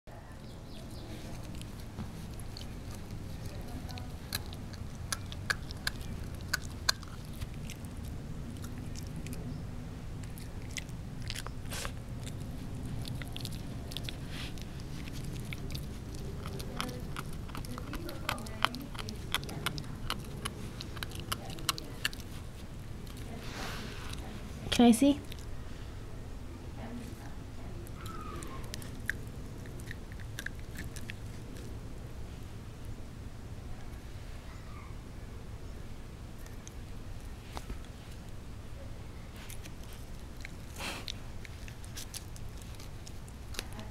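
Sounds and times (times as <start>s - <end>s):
puppy chewing and crunching: 0.4s - 25.9s, 26.8s - 33.1s, 36.2s - 38.5s, 39.2s - 43.9s.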